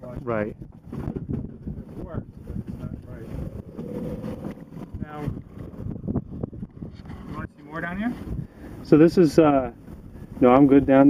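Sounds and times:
wind buffeting microphone: 0.0 - 11.0
steady low rumble: 2.0 - 9.1.

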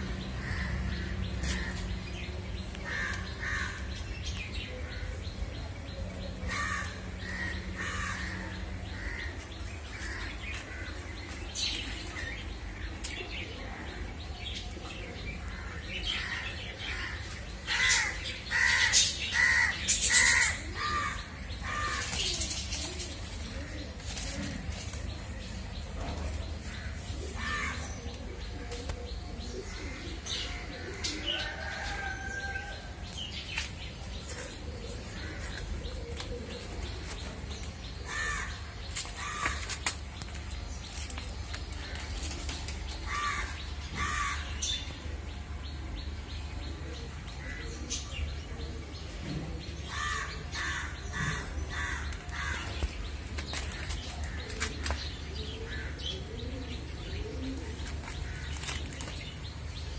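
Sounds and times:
birds chirping: 0.0 - 59.9
crows cawing: 0.4 - 1.8, 2.8 - 3.9, 6.5 - 9.4, 15.5 - 22.2, 26.8 - 27.9, 38.0 - 39.6, 43.1 - 44.6, 49.9 - 52.8.

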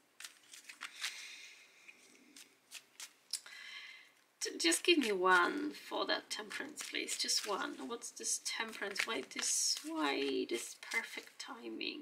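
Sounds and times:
soft card rustle: 0.0 - 3.4, 4.4 - 11.7
card edges snapping: 0.2 - 1.3, 2.3 - 3.2.

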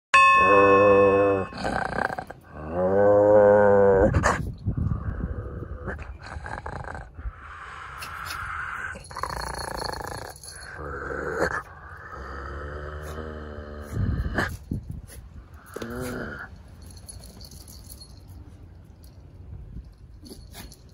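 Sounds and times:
steady tone: 0.2 - 2.2
dog growling and grunting: 1.4 - 7.3, 8.0 - 14.8, 15.5 - 16.6.

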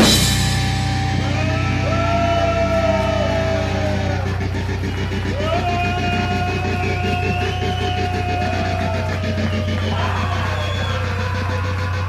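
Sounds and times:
low bass drone: 0.0 - 12.0
sustained electric guitar notes: 0.0 - 12.0.

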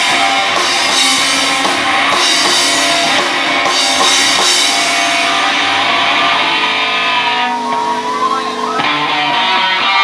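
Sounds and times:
drums: 0.0 - 10.0
punk band playing live: 0.0 - 10.0
wavering high guitar tone: 0.0 - 10.0.

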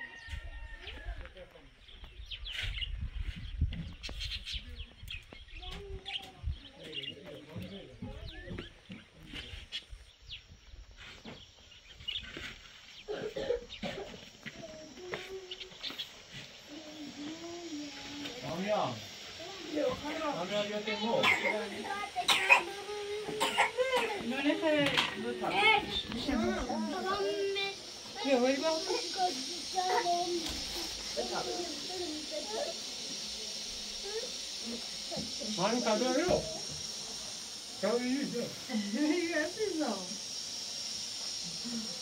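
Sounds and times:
people talking: 4.6 - 9.7, 13.1 - 15.9, 16.6 - 36.8, 37.8 - 40.2.

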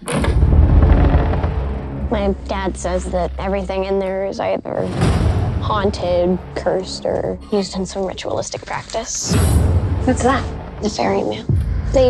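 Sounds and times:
deep cinematic rumble: 0.0 - 12.0.

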